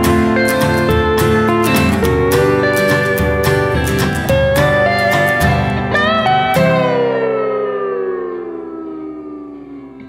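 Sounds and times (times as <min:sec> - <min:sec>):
guitar chord ringing: 0:00.0 - 0:10.0
slide guitar note gliding down: 0:00.0 - 0:10.0.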